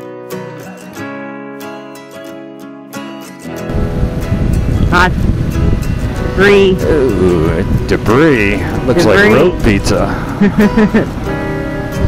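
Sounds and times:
acoustic guitar music: 0.0 - 12.0
wind and road noise on microphone: 3.7 - 12.0.

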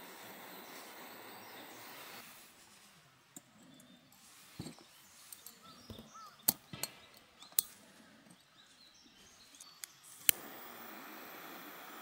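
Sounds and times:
faint bird calls: 0.0 - 12.0
sharp metal clicks: 6.4 - 7.8.

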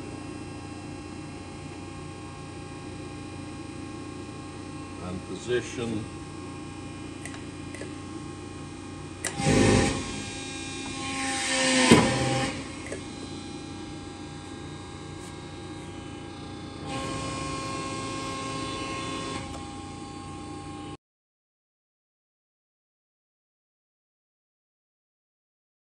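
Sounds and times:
motor noise: 6.9 - 21.0
hydraulic press humming: 9.1 - 20.6
burst of machine noise: 9.3 - 12.8.

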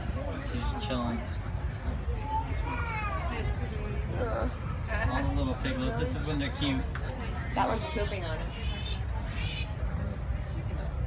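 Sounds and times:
piglet squealing: 7.6 - 9.7.

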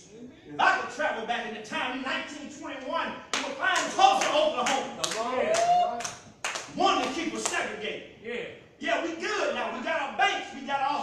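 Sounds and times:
sharp hand claps: 3.3 - 7.6.

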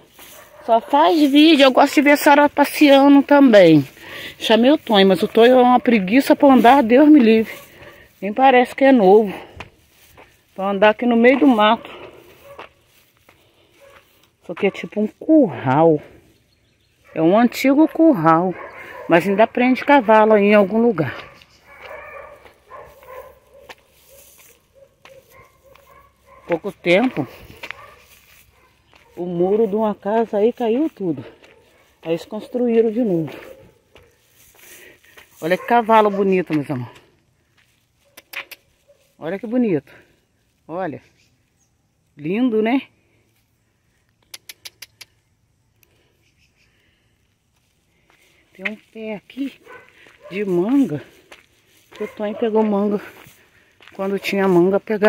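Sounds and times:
distant dogs barking: 0.0 - 9.5, 11.3 - 16.3, 16.9 - 37.0, 38.0 - 39.2, 49.4 - 55.0
faint outdoor background: 0.0 - 55.0
sharp clicks: 44.2 - 45.2.

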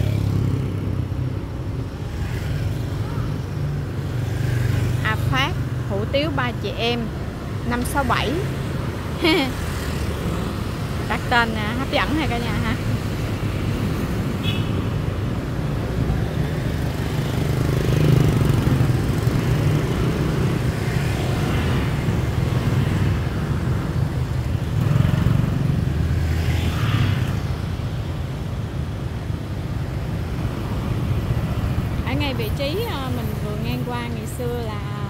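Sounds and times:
motorbikes and cars passing: 0.0 - 35.0.

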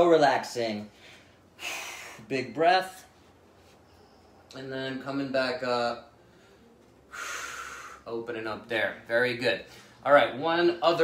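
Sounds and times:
man breathing deeply: 0.9 - 2.3, 6.2 - 8.1.

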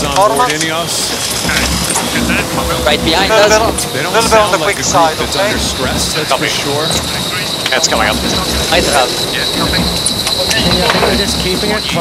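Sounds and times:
crew voices: 0.0 - 12.0
steady hum: 0.0 - 12.0.

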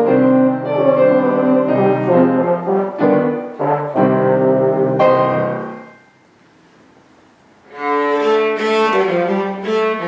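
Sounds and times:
brass horn melody: 0.0 - 6.0, 7.8 - 10.0
grand piano: 0.0 - 10.0.

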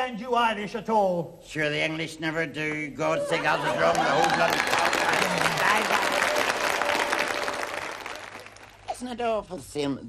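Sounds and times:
audience applauding: 3.2 - 9.0.

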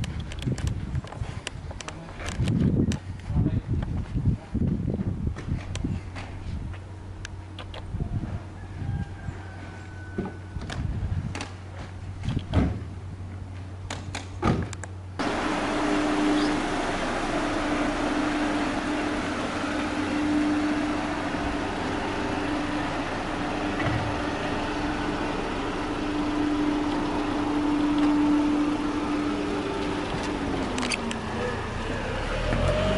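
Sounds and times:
car engine at low revs: 14.7 - 32.9.

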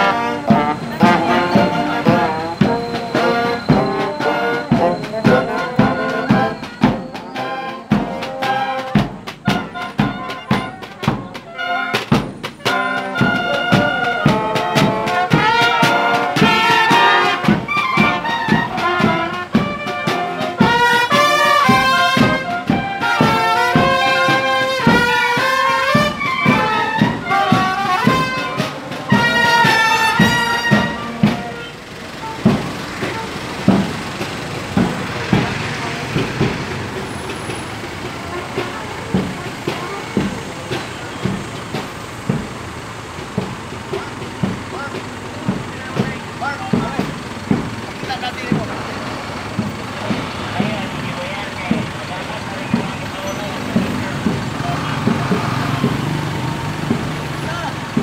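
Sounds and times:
bugles playing brass phrase: 0.0 - 41.8
marching drumbeat: 0.0 - 58.0
vehicle engine running: 18.8 - 58.0.

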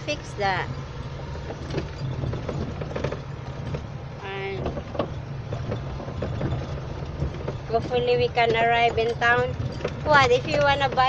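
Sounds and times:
knocks and rattles on rough road: 0.0 - 11.0
vehicle engine running: 0.0 - 11.0.

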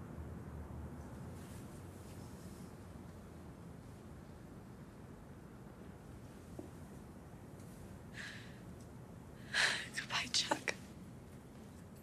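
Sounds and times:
person whispering: 9.8 - 10.8.

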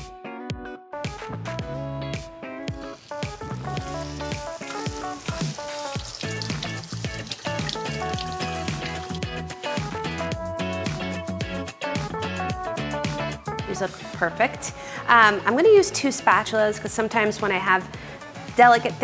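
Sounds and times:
background guitar music: 0.0 - 19.0
patties sizzling in oil: 2.4 - 9.4.

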